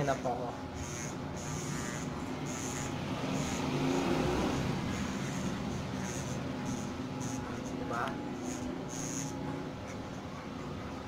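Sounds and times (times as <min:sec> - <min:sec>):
electric hair clippers buzzing: 0:00.7 - 0:10.0.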